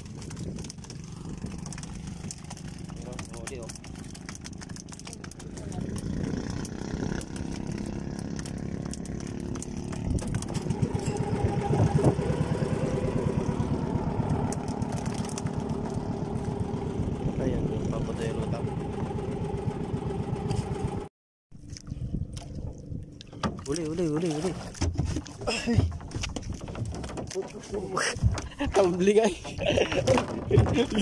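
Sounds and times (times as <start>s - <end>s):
small boat engine running: 0.0s - 31.0s.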